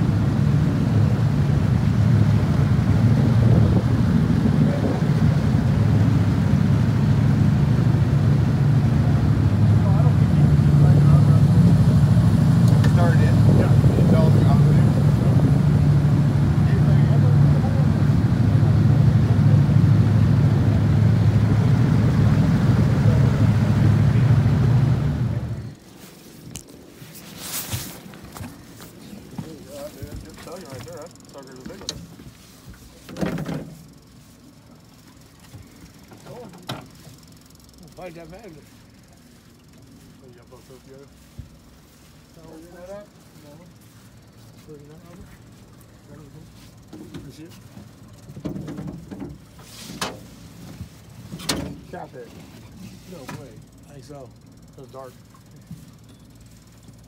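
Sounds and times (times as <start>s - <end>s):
boat motor droning: 0.0s - 57.0s.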